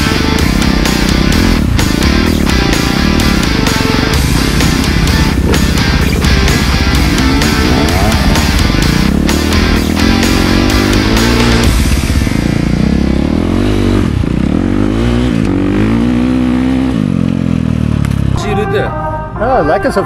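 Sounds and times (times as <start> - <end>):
background music: 0.0 - 16.8, 18.4 - 20.0
dirt bike engine revving: 0.0 - 18.4.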